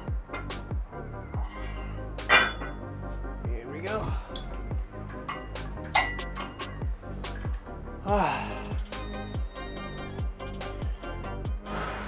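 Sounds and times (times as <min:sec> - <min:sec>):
background music with steady beat: 0:00.0 - 0:12.0
metal weights clinking: 0:01.4 - 0:02.8, 0:04.3 - 0:07.7.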